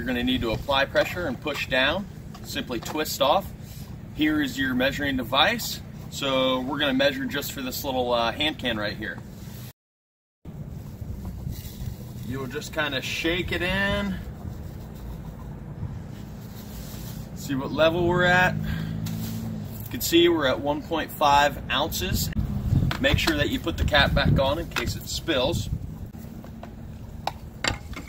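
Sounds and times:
low outdoor rumble: 0.0s - 9.7s, 10.5s - 28.0s.

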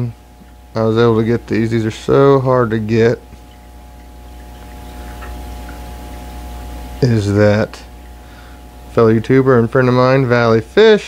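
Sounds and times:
faint steady whine: 0.0s - 11.0s
low machine hum: 0.0s - 11.0s.

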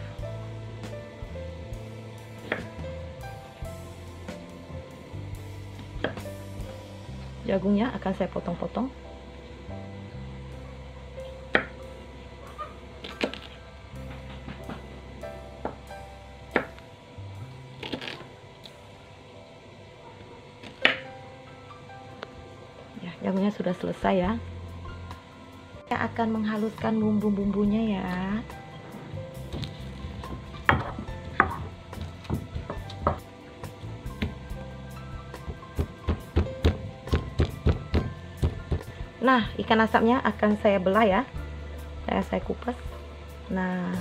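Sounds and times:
soft background music: 0.0s - 44.0s
stone pestle pounding in mortar: 30.3s - 33.3s, 35.4s - 38.9s.

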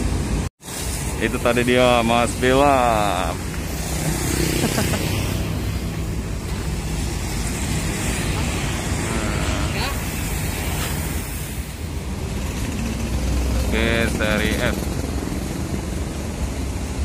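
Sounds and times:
street traffic noise: 0.0s - 17.0s.

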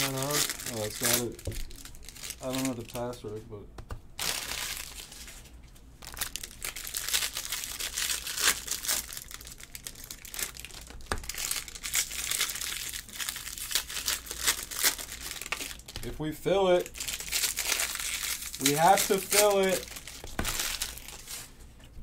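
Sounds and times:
foil wrappers crinkling and tearing: 0.0s - 3.4s, 4.2s - 21.7s.

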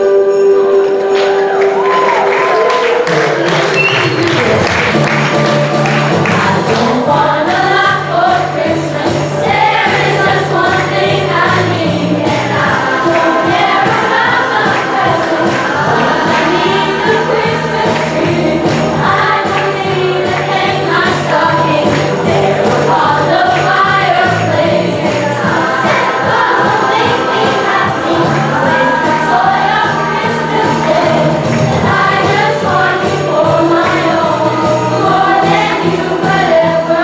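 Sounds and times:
pulsing bass line: 4.4s - 37.0s
children singing in unison: 6.2s - 37.0s.

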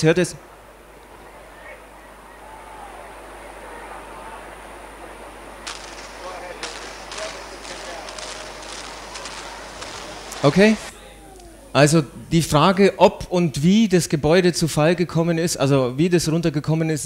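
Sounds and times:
faint distant voices: 0.0s - 13.4s
steady hiss: 0.0s - 14.9s
sharp cracks or bangs: 5.6s - 10.9s.

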